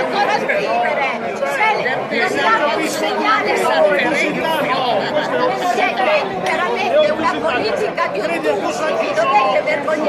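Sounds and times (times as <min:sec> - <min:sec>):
adults shouting and arguing: 0:00.0 - 0:10.0.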